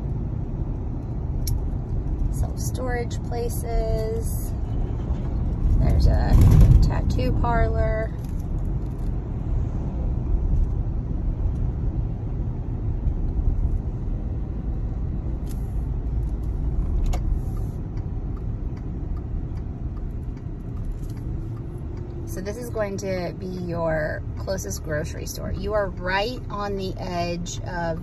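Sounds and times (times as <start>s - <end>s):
car cabin road and engine noise: 0.0s - 28.0s.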